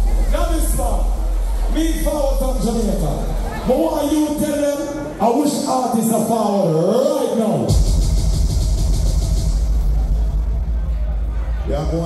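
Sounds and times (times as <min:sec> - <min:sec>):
deep bass rumble: 0:07.7 - 0:12.0.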